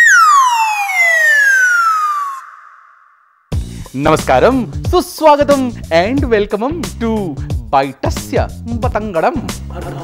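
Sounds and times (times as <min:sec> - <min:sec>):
comic falling whistle: 0:00.0 - 0:03.5.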